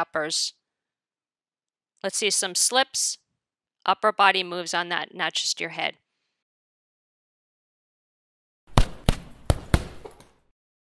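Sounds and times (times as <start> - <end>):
punch impact thuds: 8.7 - 10.2.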